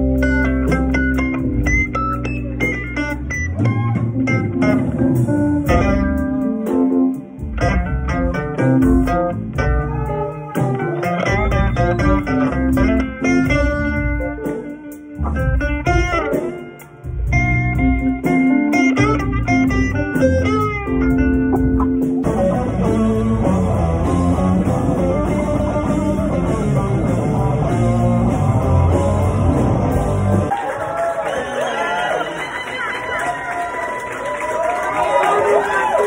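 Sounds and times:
electric guitar with bent notes: 0.0s - 30.5s
live rock band playing: 0.0s - 30.6s.

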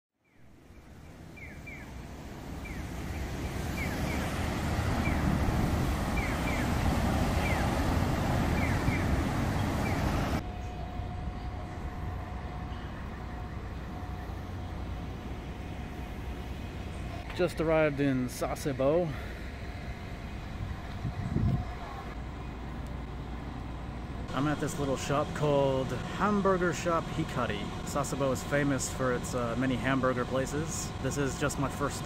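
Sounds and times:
steady outdoor hum: 0.2s - 32.0s
passing vehicles rushing: 1.0s - 11.0s.

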